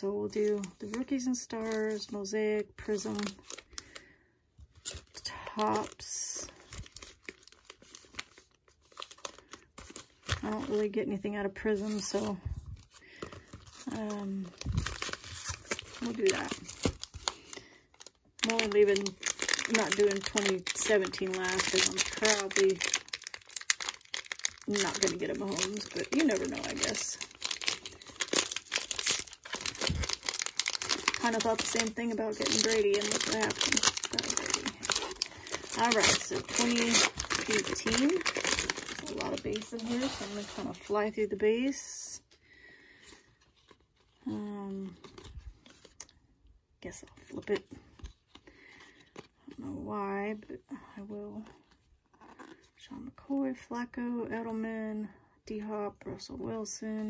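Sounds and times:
foil packs crinkling: 2.8s - 4.1s, 4.7s - 10.8s, 13.0s - 41.8s.

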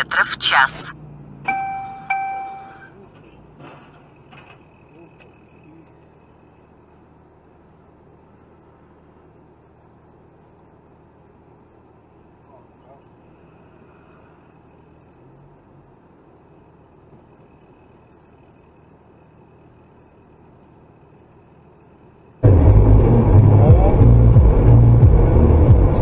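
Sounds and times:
in-car road noise: 0.0s - 26.0s
electronic chimes: 1.5s - 2.9s.

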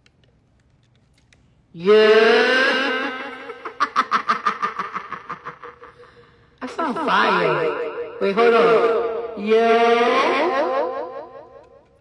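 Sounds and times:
woman laughing into echoing microphone: 2.5s - 7.6s.

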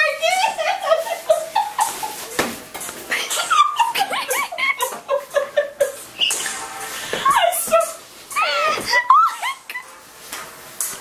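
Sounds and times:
people squealing and laughing: 0.0s - 2.4s, 3.1s - 9.8s.

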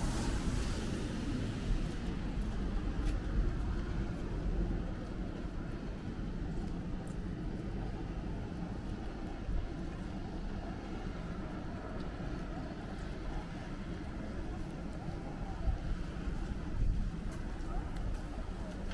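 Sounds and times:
distant traffic rumble: 0.0s - 18.9s.

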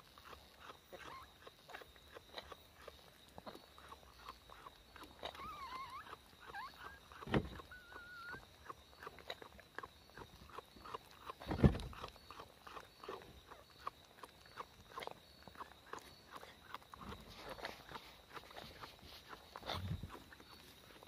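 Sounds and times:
faint puppy squeak: 0.2s - 21.0s.

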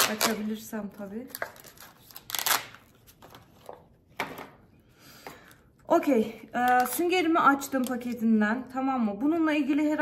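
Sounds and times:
packet torn and rustled open: 1.3s - 3.6s.

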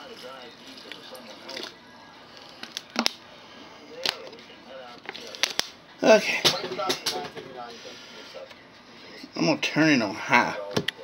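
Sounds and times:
faint television speech: 0.0s - 11.0s.

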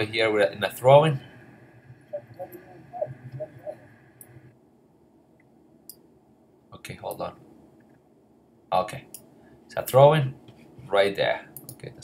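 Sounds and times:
faint voice-like sounds: 0.8s - 4.5s.

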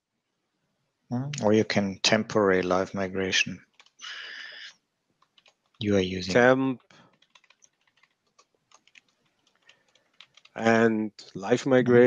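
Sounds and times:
keyboard typing: 3.6s - 10.9s.

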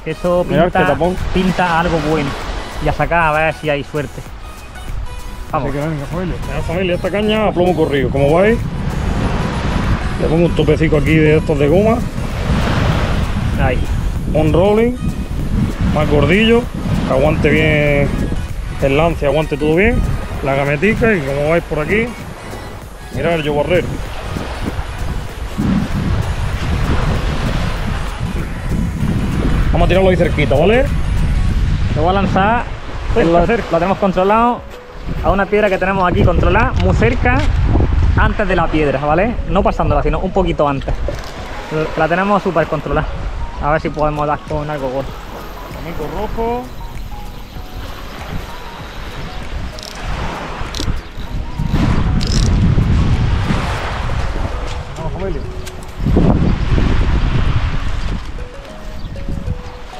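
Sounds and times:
surf washing on beach: 0.0s - 59.9s
wind buffeting microphone: 0.0s - 59.9s.

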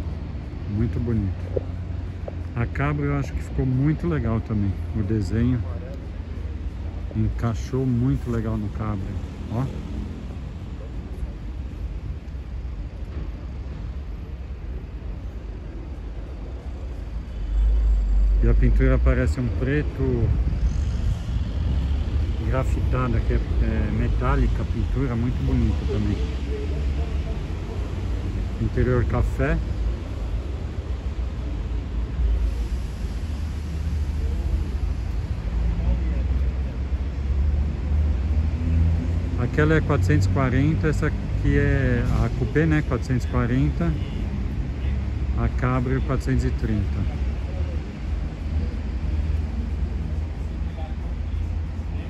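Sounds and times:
distant traffic rumble: 0.0s - 52.0s.

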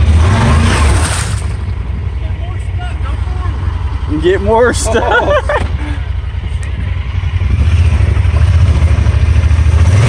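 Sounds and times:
tires churning through mud: 0.0s - 10.0s
utility vehicle engine running hard: 0.0s - 10.0s.

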